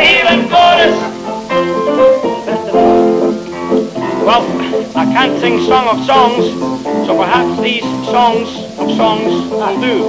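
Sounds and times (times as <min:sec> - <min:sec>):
live band playing: 0:00.0 - 0:10.0.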